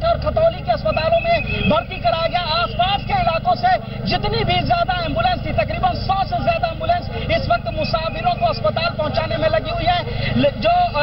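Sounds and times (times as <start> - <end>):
man talking loudly: 0.0 - 11.0
steady low hum: 0.0 - 11.0.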